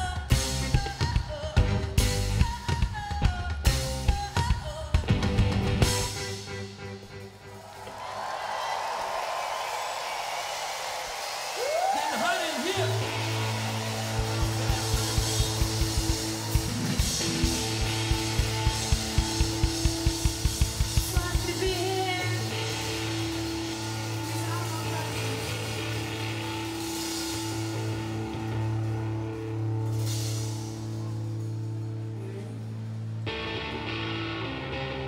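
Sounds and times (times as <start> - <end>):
crowd noise: 5.1 - 35.0
person whooping: 7.6 - 17.0
rock band droning note: 12.8 - 35.0.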